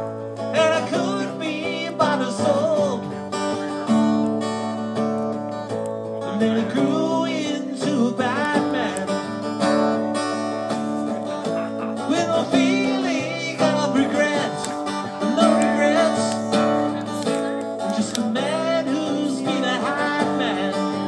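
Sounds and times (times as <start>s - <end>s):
acoustic guitar playing: 0.0s - 21.0s.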